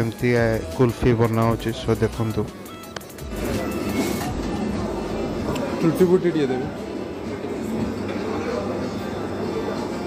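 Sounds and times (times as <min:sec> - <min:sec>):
busy restaurant background noise: 0:00.0 - 0:10.0.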